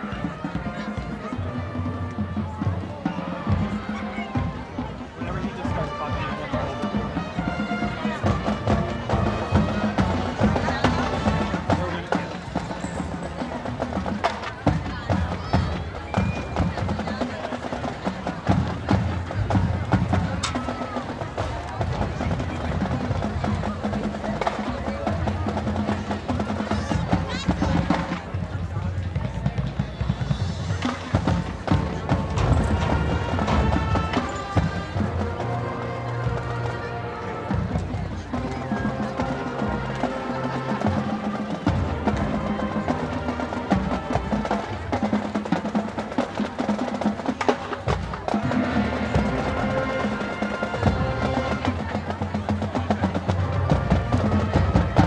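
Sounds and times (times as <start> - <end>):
distant marching band with drums: 0.0 - 55.0.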